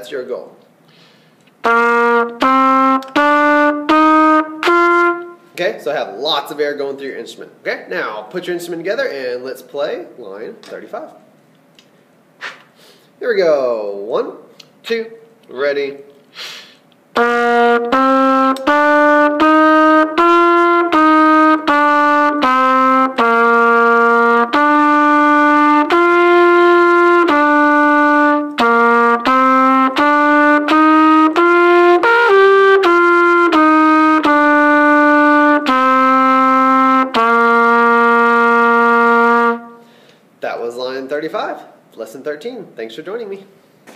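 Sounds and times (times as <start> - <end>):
solo trumpet melody: 1.6 - 5.5, 17.1 - 40.0.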